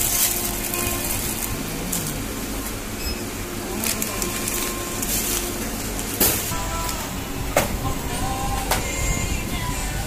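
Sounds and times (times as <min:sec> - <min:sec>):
groceries handled in plastic basket: 0:00.0 - 0:02.3, 0:03.7 - 0:07.0
room hum: 0:00.0 - 0:10.0.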